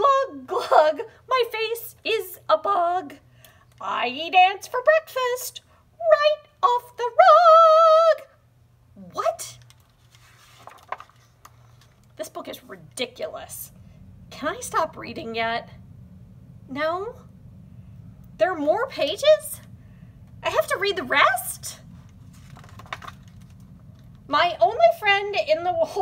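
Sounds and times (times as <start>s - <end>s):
low steady hum: 0.0s - 26.0s
paper page turning: 9.6s - 12.2s, 22.1s - 23.7s.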